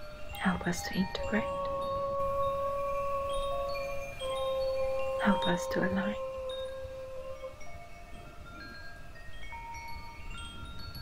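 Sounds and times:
chimes ringing: 0.0 - 11.0.

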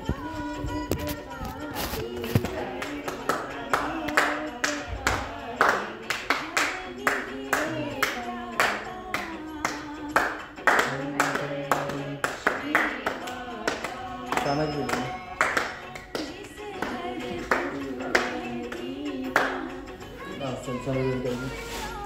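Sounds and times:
devotional song singing: 0.0 - 22.0
hands clapping in rhythm: 2.0 - 19.9.

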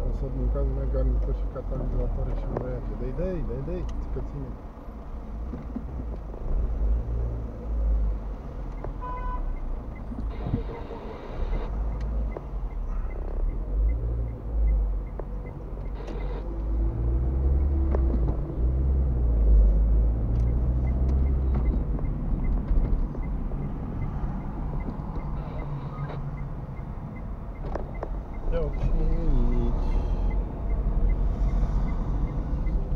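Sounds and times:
car engine and tyres rumbling: 0.0 - 32.9.

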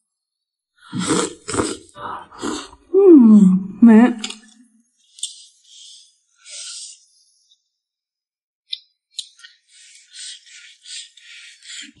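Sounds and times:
chewing and slurping: 0.9 - 2.8.

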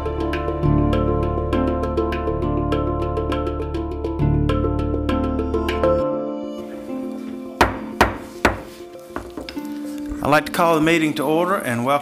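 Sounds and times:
soft background music: 0.0 - 12.0
gavel knocks: 7.6 - 9.6.

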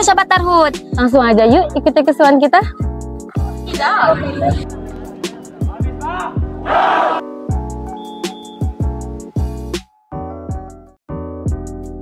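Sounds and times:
background music with drum beat: 0.0 - 6.8, 7.5 - 9.9, 11.5 - 12.0
team group shout: 6.0 - 7.2.

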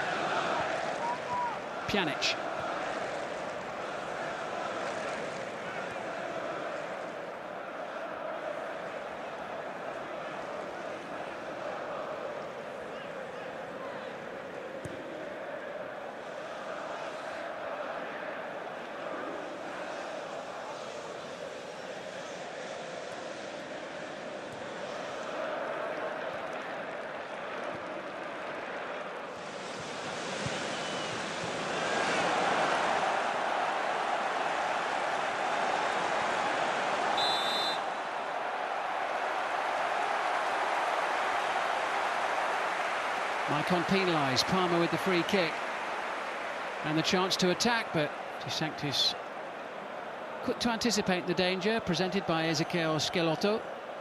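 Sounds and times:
stadium crowd roar: 0.0 - 54.0
referee's whistle blast: 37.2 - 37.9.

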